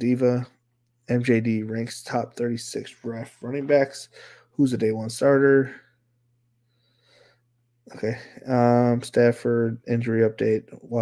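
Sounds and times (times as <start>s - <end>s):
faint short breath: 4.1s - 4.5s, 6.7s - 7.5s.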